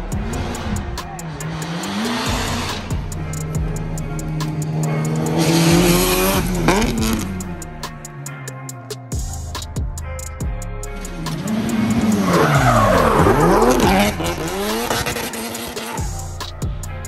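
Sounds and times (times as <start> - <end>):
car engine revving hard: 0.0 - 7.6, 11.2 - 16.1
background music with beat: 0.0 - 17.0.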